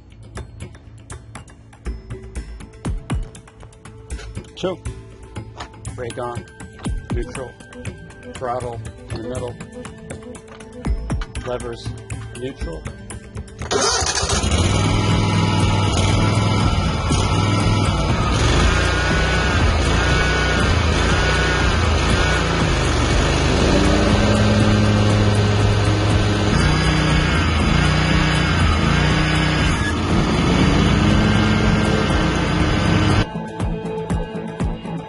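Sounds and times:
background music: 0:00.0 - 0:35.0
lawn mower engine running: 0:13.6 - 0:33.3.

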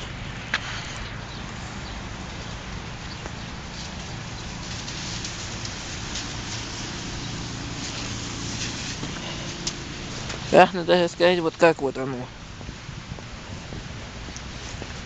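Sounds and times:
hiss of wet street: 0:00.0 - 0:15.0.

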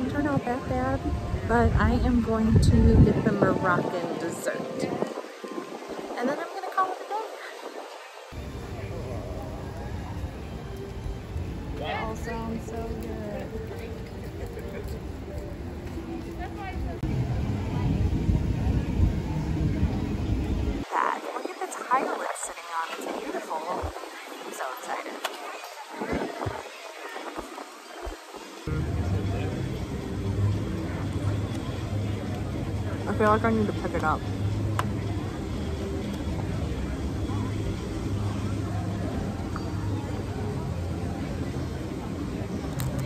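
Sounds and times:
faint voices: 0:00.0 - 0:43.0
low outdoor rumble: 0:08.4 - 0:21.1.

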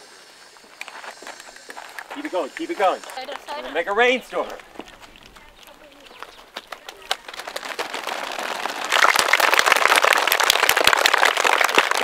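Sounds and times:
children clapping: 0:04.4 - 0:12.0.

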